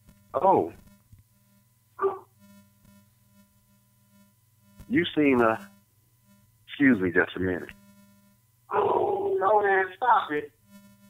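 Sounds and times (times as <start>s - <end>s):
faint steady hum: 0.0s - 11.0s
dog barking over phone: 2.0s - 2.3s.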